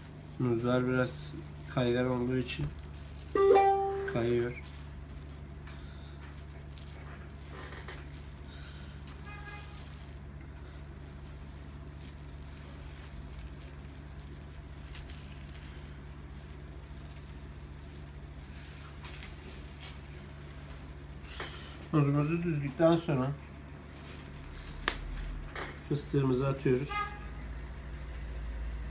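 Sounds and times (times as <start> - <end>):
gloved fingers handling food: 0.0 - 26.8.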